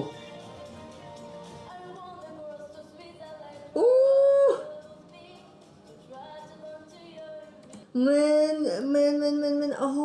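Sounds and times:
quiet backing music: 0.0s - 10.0s.

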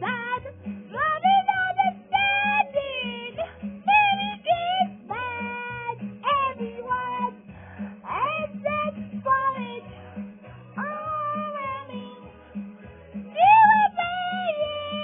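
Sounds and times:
person singing: 0.0s - 15.0s.

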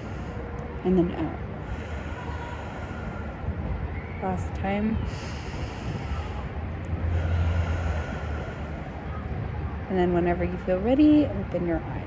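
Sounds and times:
deep breathing close to microphone: 0.0s - 3.7s, 5.0s - 9.2s
steady low hum: 0.0s - 12.0s.

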